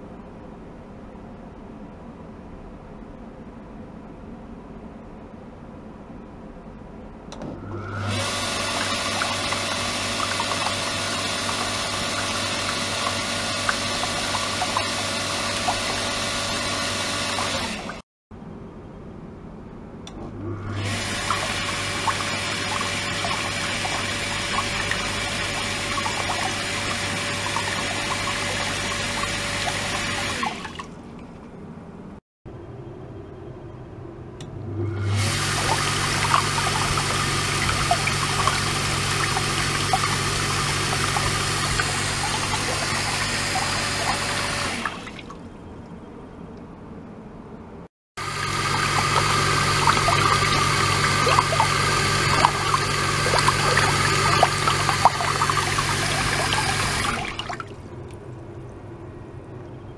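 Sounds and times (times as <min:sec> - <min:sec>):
circulation pump humming: 0:07.3 - 0:18.0, 0:20.0 - 0:31.6, 0:34.3 - 0:46.0, 0:48.2 - 0:59.8
water churning and splashing: 0:07.9 - 0:18.0, 0:20.8 - 0:31.3, 0:35.1 - 0:45.5, 0:48.2 - 0:58.4.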